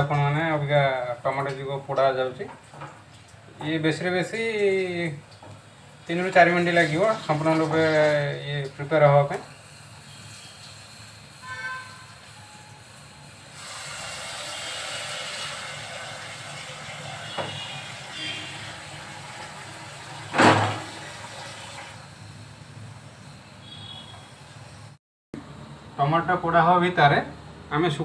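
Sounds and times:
gas burner flame hissing: 0:03.5 - 0:25.0.

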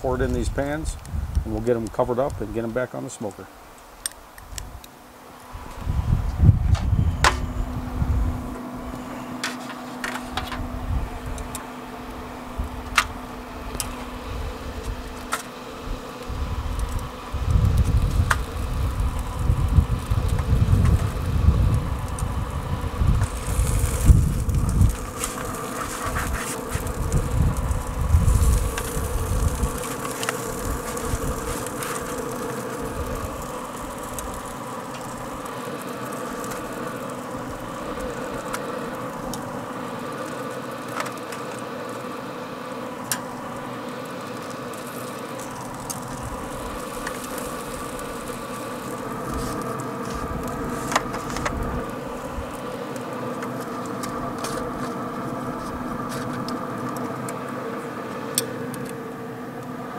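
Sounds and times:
grill fan humming: 0:00.0 - 0:59.9
low rumble: 0:16.2 - 0:35.5.

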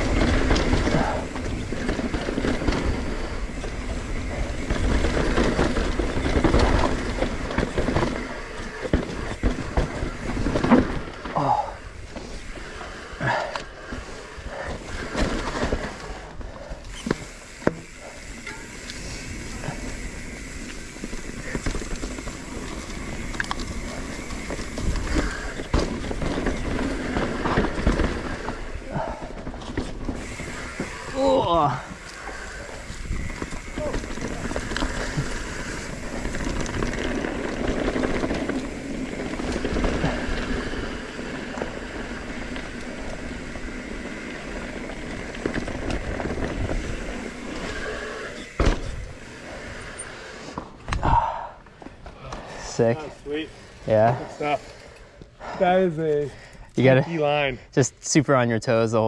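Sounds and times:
bike frame rattling: 0:00.0 - 0:57.5
bike tyres rolling over dirt: 0:00.0 - 0:57.6.

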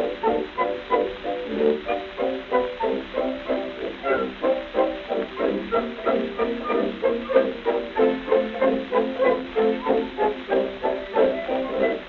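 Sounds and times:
dance orchestra on old gramophone: 0:00.0 - 0:12.0.

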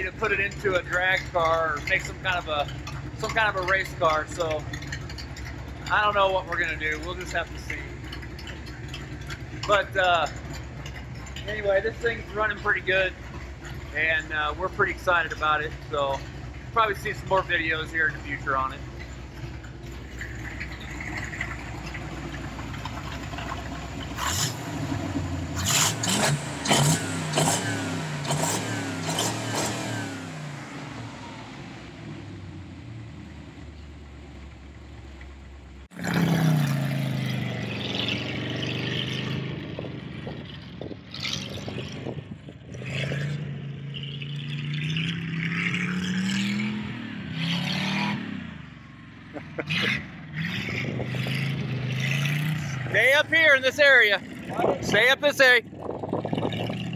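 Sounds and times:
car engine revving: 0:00.0 - 0:56.9.

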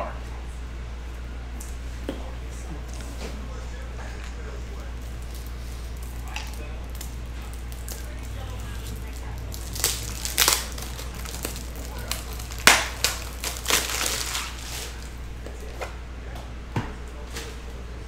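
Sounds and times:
low electrical hum: 0:00.0 - 0:18.0
plastic wrapper crinkling: 0:04.8 - 0:15.2.

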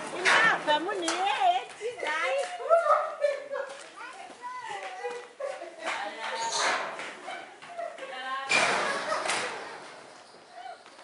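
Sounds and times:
children talking and calling out: 0:00.0 - 0:08.6, 0:10.4 - 0:11.0.

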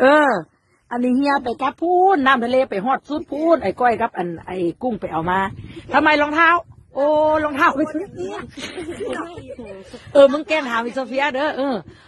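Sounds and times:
soft voices talking: 0:00.0 - 0:11.9.

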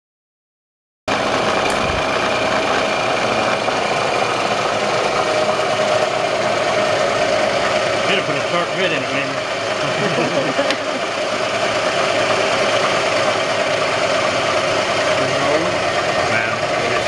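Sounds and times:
milling machine whining: 0:01.1 - 0:17.0.

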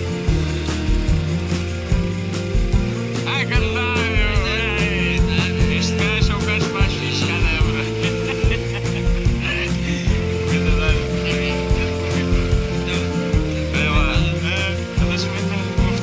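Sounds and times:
background music with drum beat: 0:00.0 - 0:16.0.

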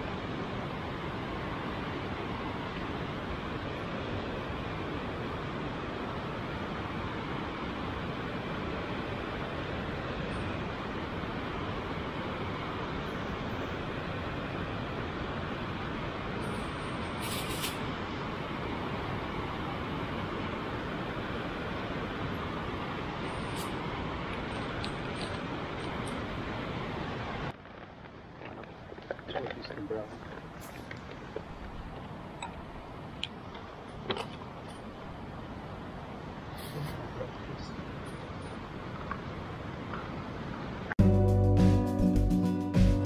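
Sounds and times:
steady rushing noise: 0:00.0 - 0:41.0.

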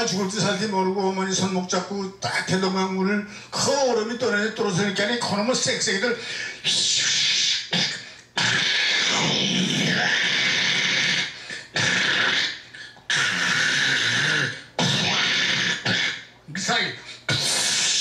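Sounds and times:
man making rushing vocal effects: 0:06.6 - 0:18.0.

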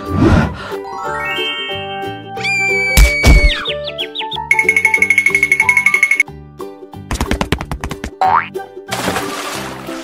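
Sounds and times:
background music: 0:00.0 - 0:10.0
splash: 0:08.9 - 0:10.0.

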